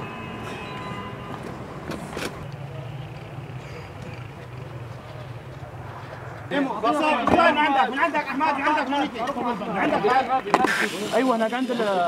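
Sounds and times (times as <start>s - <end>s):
vehicle engine humming: 0.0s - 11.7s.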